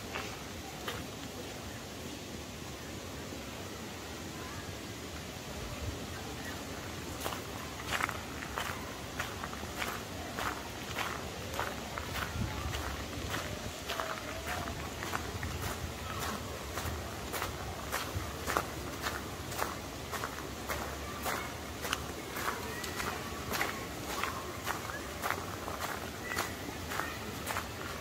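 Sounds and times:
outdoor background noise: 0:00.0 - 0:28.0
footsteps on sandy gravel: 0:07.1 - 0:28.0.

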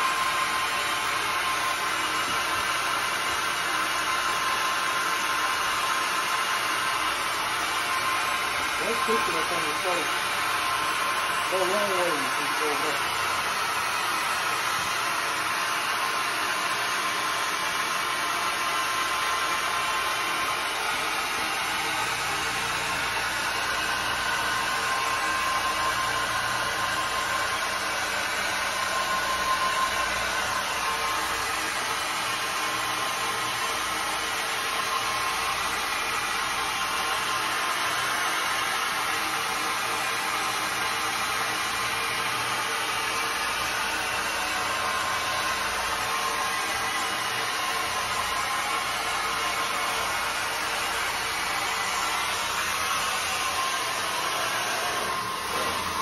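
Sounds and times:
floor scrubbing machine running: 0:00.0 - 0:56.0.

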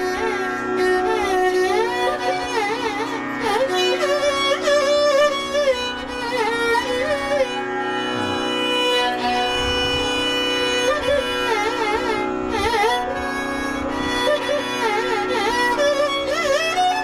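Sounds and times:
tanpura drone: 0:00.0 - 0:17.0
ornamented vocal melody: 0:08.1 - 0:08.7.

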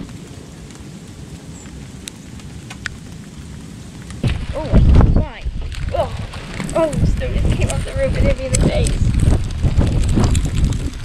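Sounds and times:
wind and blowing snow: 0:00.0 - 0:11.0
light ticks: 0:01.6 - 0:03.1.

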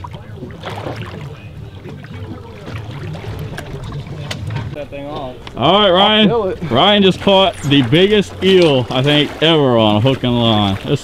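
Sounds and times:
boat engine idling rumble: 0:00.0 - 0:11.0
faint distant voices: 0:00.0 - 0:11.0
water noise: 0:00.0 - 0:11.0
wind: 0:00.0 - 0:11.0.

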